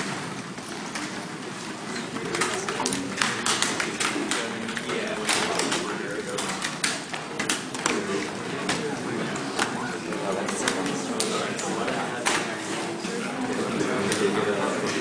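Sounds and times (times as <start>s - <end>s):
babble of students talking: 0.0s - 15.0s.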